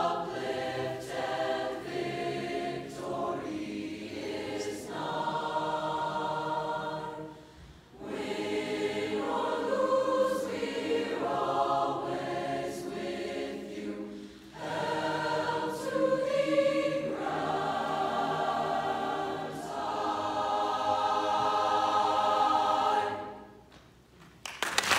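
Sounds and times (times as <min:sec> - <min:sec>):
choir of mixed voices singing: 0:00.0 - 0:23.6.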